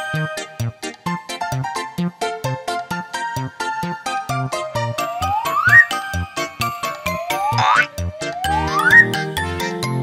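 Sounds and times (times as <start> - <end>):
upbeat children's music: 0.0 - 10.0
whistle-like rising tone: 5.1 - 6.0, 6.9 - 9.2.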